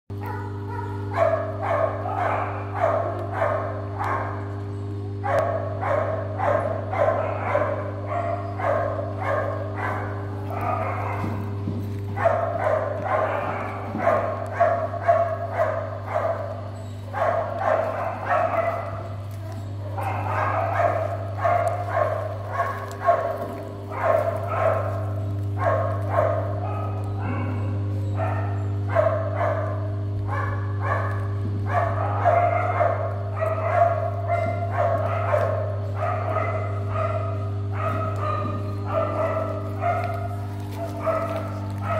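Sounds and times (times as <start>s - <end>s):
dogs barking: 0.1s - 41.9s
steady low hum: 0.1s - 41.9s.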